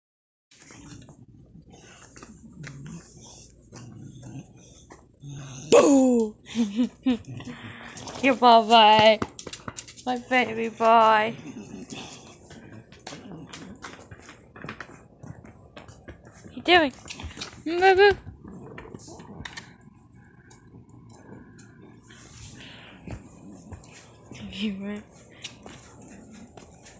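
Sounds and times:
dog grunting and snorting: 0.6s - 8.4s, 11.1s - 14.8s, 17.0s - 24.4s
dog paws on concrete: 7.5s - 26.9s.

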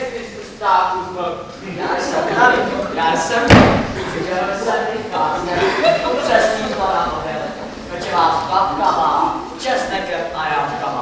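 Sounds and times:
voices talking: 0.0s - 11.0s
loud thump in hall: 3.4s - 4.2s.

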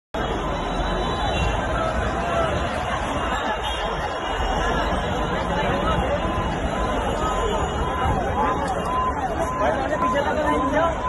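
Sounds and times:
crowd chattering: 0.1s - 11.0s.

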